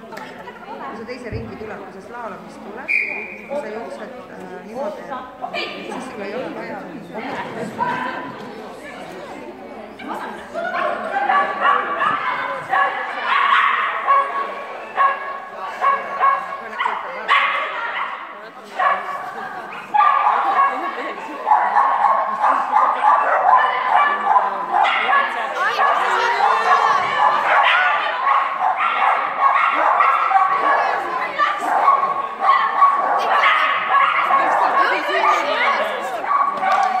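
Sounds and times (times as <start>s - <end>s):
dog barking and yipping: 10.8s - 14.4s, 20.0s - 20.8s, 21.5s - 30.8s, 31.4s - 35.7s, 36.3s - 37.0s.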